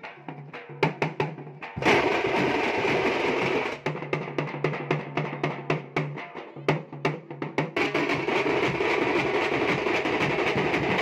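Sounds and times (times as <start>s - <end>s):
fast drum roll: 0.8s - 5.2s, 7.2s - 11.0s.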